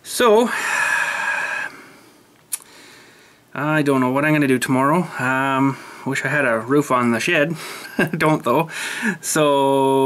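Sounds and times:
mouth click: 0:02.4 - 0:02.7.

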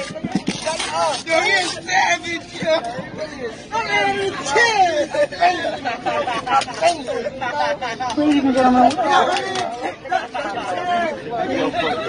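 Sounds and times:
people talking over one another: 0:00.0 - 0:12.0.

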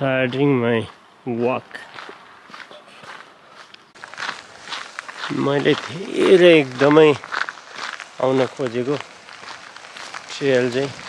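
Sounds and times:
quiet footsteps: 0:00.1 - 0:11.0.

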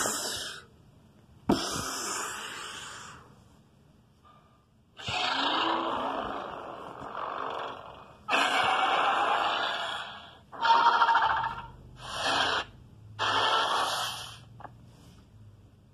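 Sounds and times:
rasping monster roars: 0:08.3 - 0:14.2.

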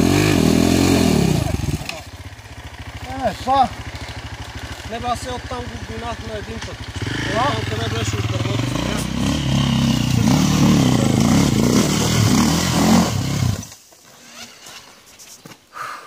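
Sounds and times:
dirt bike engine revving: 0:00.0 - 0:14.7.

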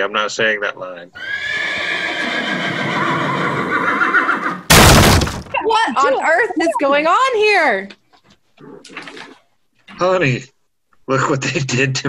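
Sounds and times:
horse whinnying: 0:01.2 - 0:04.7.

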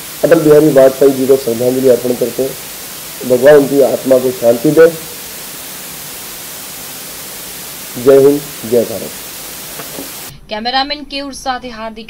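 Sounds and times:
background hiss: 0:00.0 - 0:12.0
man speaking into a microphone: 0:00.2 - 0:02.6, 0:03.2 - 0:05.0, 0:08.0 - 0:09.2.

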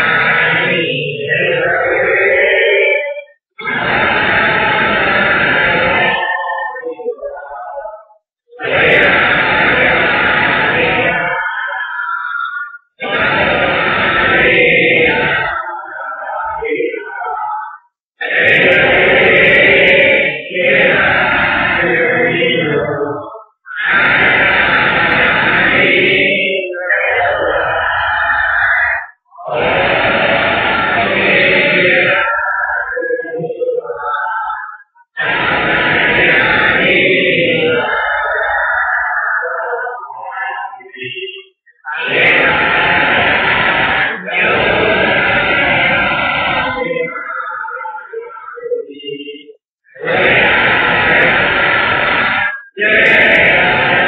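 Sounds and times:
voices chanting: 0:00.0 - 0:54.0.

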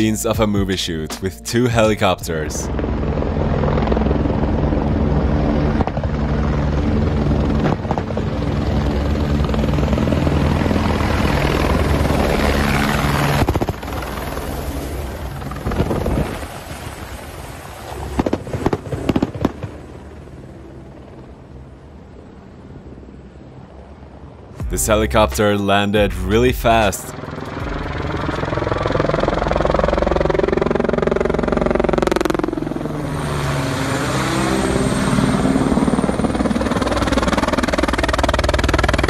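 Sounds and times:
helicopter rotors and engine: 0:00.0 - 0:39.0.

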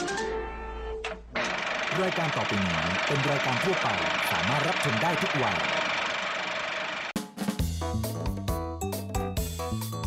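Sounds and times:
person reading aloud: 0:01.9 - 0:05.8.

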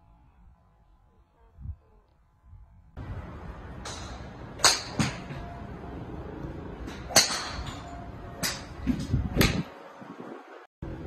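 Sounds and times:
golf clubs striking balls: 0:03.0 - 0:05.6, 0:06.2 - 0:09.8.

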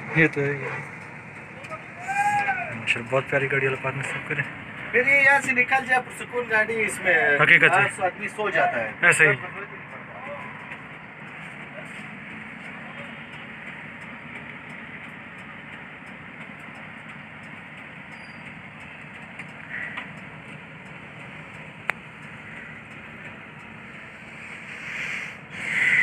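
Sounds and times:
bus running noise: 0:00.0 - 0:26.0.

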